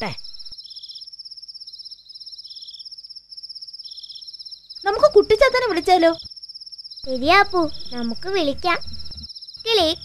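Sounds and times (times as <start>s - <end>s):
crickets chirping: 0.0s - 10.0s
lower insect trill: 0.0s - 10.0s
child's voice: 4.8s - 6.2s, 7.1s - 8.8s, 9.7s - 10.0s.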